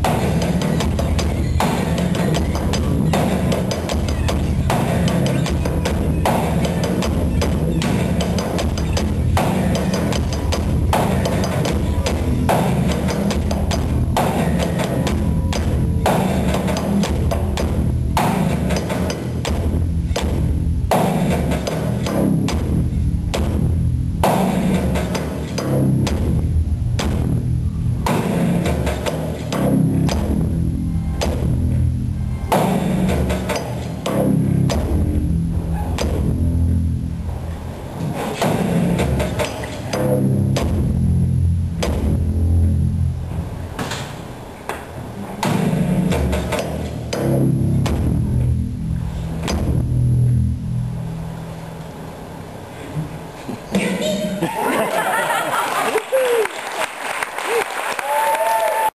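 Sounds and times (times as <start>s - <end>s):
deep bass notes: 0.0s - 55.4s
drumstick striking pipe: 38.2s - 42.8s, 45.4s - 48.7s, 49.4s - 50.4s.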